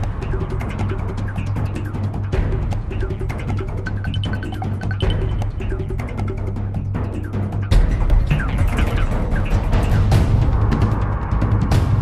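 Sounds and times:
music with low bass and percussion: 0:00.0 - 0:12.0.

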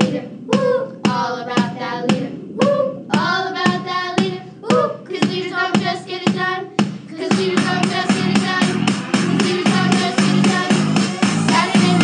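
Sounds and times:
children singing: 0:00.0 - 0:12.0
steady beat of sharp hits: 0:00.0 - 0:12.0.

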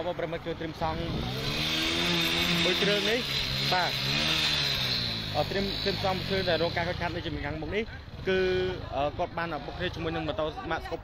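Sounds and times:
vehicle engine passing: 0:00.0 - 0:10.5
people talking: 0:05.4 - 0:11.0.

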